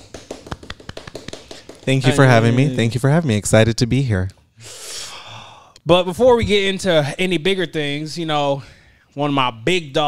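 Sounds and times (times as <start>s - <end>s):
light hand claps: 0.0s - 2.2s
man speaking: 1.8s - 4.4s.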